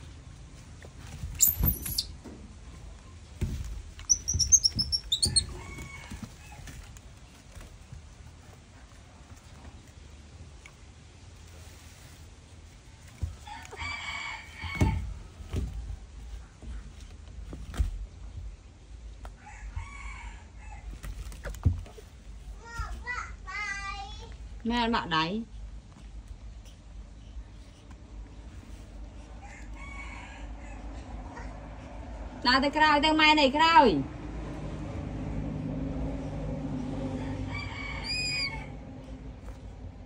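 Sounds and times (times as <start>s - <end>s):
baby monkey squeaking: 1.4s - 2.2s, 4.0s - 6.1s, 38.0s - 38.7s
dull knocks and bumps: 3.3s - 8.2s, 14.6s - 18.5s
faint rooster crowing: 5.1s - 7.0s, 13.3s - 15.6s, 19.3s - 21.2s, 29.2s - 32.0s, 37.0s - 39.1s.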